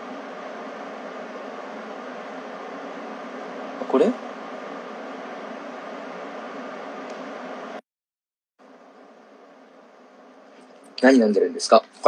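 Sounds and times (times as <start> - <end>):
steady hiss: 0.0 - 7.8, 8.6 - 12.0.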